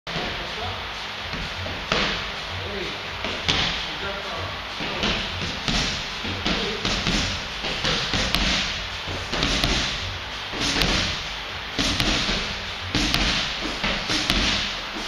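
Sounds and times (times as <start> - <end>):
gloved strikes on pad: 4.8 - 10.0, 10.6 - 11.2, 11.8 - 14.8.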